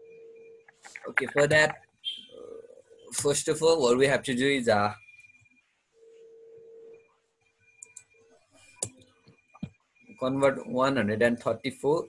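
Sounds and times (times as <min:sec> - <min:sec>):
faint steady tone: 0:00.0 - 0:12.0.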